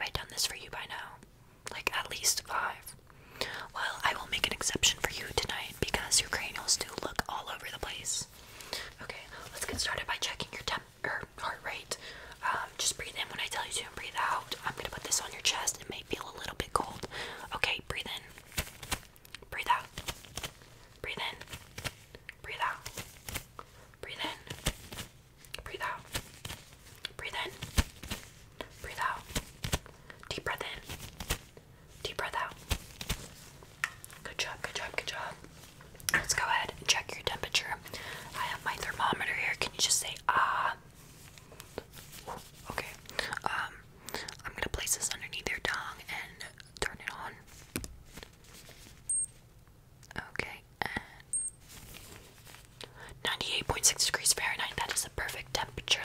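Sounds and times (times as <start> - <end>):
woman whispering: 0.0 - 18.4, 19.4 - 20.0, 21.0 - 21.5, 22.3 - 23.0, 24.0 - 24.6, 25.5 - 26.1, 27.1 - 27.6, 28.6 - 29.4, 30.2 - 30.9, 31.9 - 32.7, 34.2 - 35.5, 36.1 - 40.9, 42.4 - 47.5, 50.0 - 51.3, 52.8 - 56.0.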